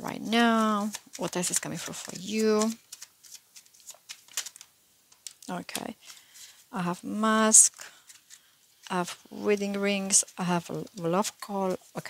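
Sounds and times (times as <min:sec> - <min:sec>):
cards being shuffled: 0:00.2 - 0:06.6, 0:07.9 - 0:09.0.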